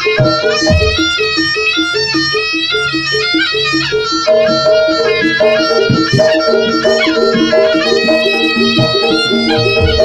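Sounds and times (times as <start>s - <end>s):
pitched percussion notes: 0.0s - 10.0s
shawm playing nasal melody: 0.0s - 10.0s.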